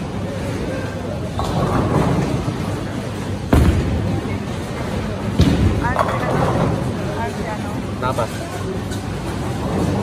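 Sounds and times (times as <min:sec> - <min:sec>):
bowling balls rolling: 0:01.2 - 0:07.2.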